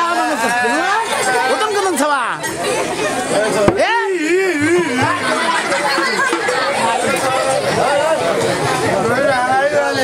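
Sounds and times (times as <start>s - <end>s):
actors declaiming dialogue: 0.0s - 10.0s.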